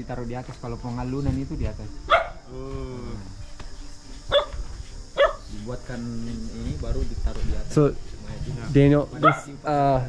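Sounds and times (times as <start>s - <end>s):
dog barking: 2.1s - 2.4s, 4.3s - 4.6s, 5.2s - 5.4s, 9.2s - 9.6s.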